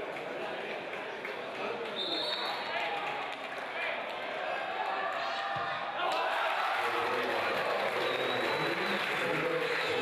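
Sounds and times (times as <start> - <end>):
stadium crowd shouting: 2.0 - 10.0.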